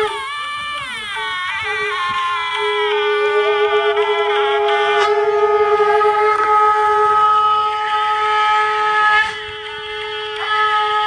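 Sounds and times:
conch shells blown: 0:00.0 - 0:11.0.

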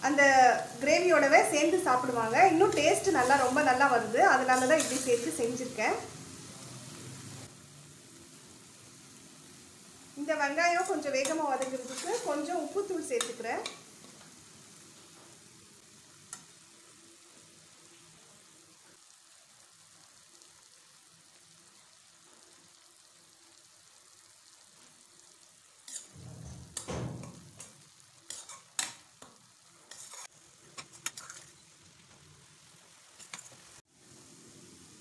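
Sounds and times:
onion sizzling in oil: 0:00.0 - 0:35.0
metal spoon scraping pot: 0:11.2 - 0:12.4, 0:29.9 - 0:31.6.

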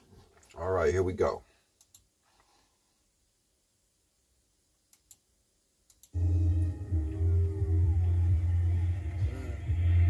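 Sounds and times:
faint clicks: 0:01.8 - 0:02.5, 0:04.9 - 0:05.2, 0:05.8 - 0:06.2.

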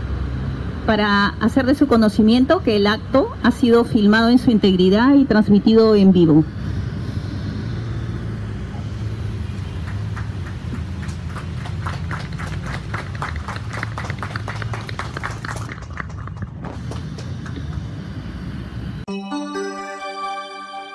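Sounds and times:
steady low hum: 0:00.0 - 0:19.1.

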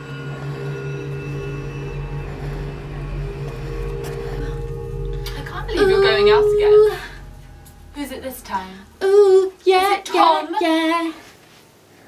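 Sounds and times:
deep rumble: 0:00.0 - 0:10.4
low sustained drone: 0:00.0 - 0:10.5.

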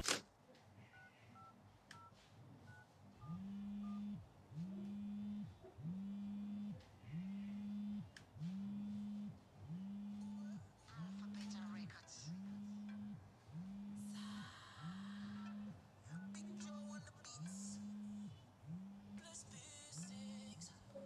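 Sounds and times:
phone vibrating on glass table: 0:03.2 - 0:19.4.

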